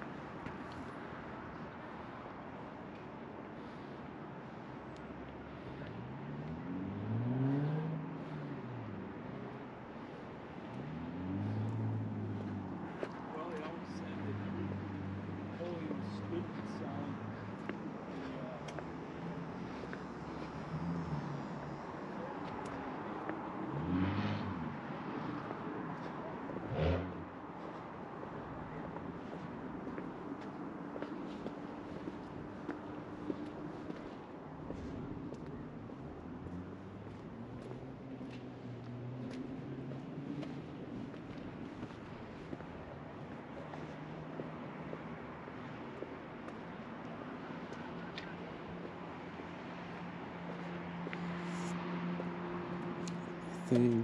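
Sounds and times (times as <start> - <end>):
hum of distant traffic: 0.0 - 54.0
vehicles passing: 0.0 - 54.0.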